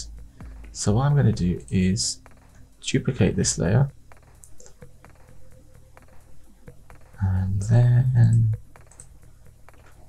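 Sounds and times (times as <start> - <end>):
quiet background music: 0.0 - 10.0
keyboard and mouse clicks: 4.2 - 5.3, 8.2 - 10.0.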